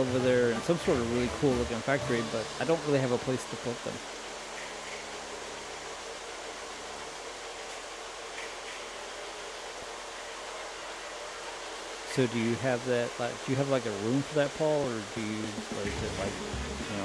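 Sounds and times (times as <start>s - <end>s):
toy trains whirring on track: 0.0s - 17.0s.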